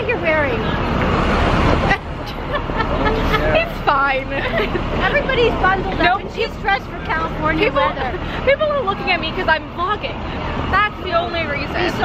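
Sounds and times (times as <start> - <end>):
distant voices: 0.0 - 12.0
steady traffic noise: 0.0 - 12.0.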